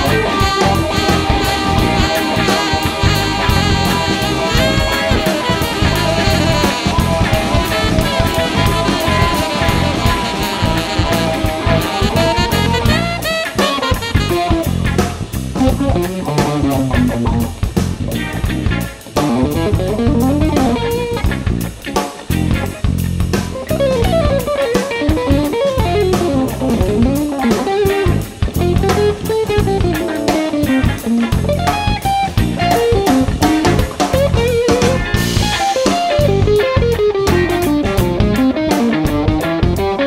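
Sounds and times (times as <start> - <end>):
drum kit: 0.0 - 40.0
electric bass: 0.0 - 40.0
electric guitar lead line: 0.0 - 40.0.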